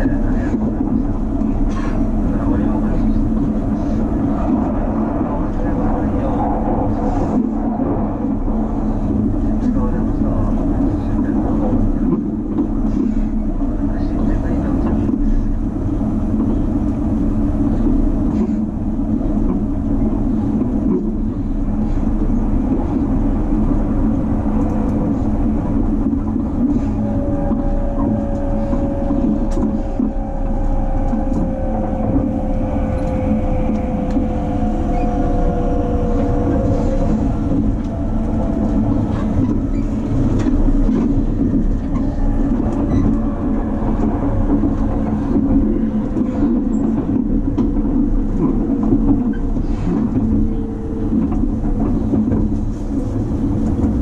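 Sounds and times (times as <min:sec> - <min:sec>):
train wheels rumbling on rail: 0:00.0 - 0:54.0.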